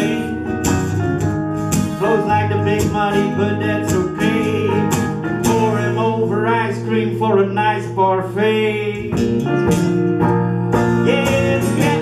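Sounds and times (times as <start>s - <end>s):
electric guitar strumming chords: 0.0s - 12.0s.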